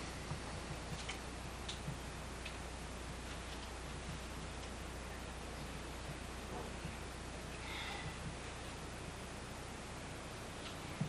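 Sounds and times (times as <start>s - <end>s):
steady low hum and hiss: 0.0s - 11.0s.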